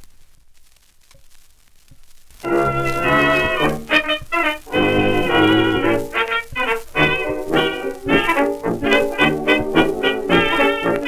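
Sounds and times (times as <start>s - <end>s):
record surface crackle: 0.0s - 11.0s
dance band playing chords: 2.5s - 11.0s.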